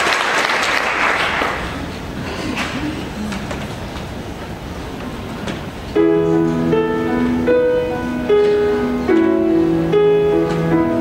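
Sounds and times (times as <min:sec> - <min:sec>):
audience applause: 0:00.0 - 0:02.8
crowd noise in large room: 0:00.0 - 0:11.0.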